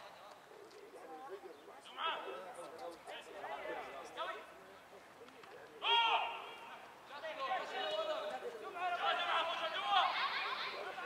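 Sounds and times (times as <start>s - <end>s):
voices shouting: 5.8s - 11.0s.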